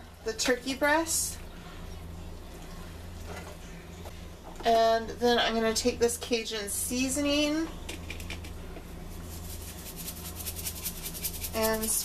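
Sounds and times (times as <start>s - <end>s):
hands rubbing butter on meat: 9.1s - 12.0s.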